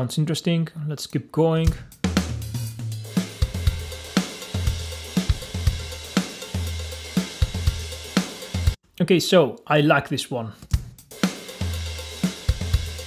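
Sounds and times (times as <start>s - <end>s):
electronic drum beat: 1.6s - 8.8s, 10.7s - 13.0s
crash cymbal wash: 2.8s - 8.8s.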